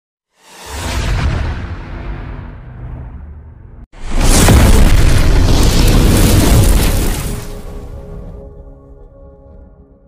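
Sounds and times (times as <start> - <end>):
loud rumbling explosion boom: 0.9 - 8.0.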